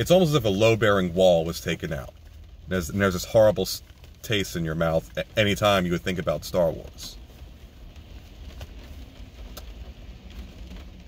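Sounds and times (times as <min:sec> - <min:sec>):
car cabin low rumble: 0:00.0 - 0:11.0.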